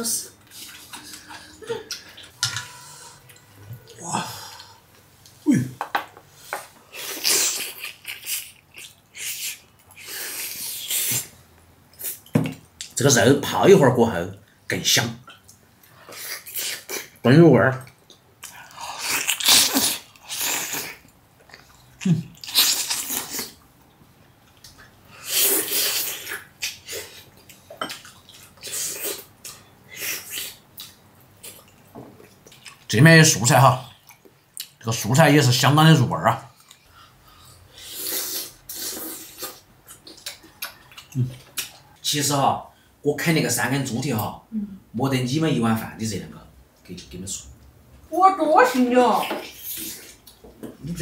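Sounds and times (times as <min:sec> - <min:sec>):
man slurping and chewing: 0:06.9 - 0:11.3, 0:18.4 - 0:23.6, 0:25.1 - 0:32.8, 0:37.8 - 0:41.6.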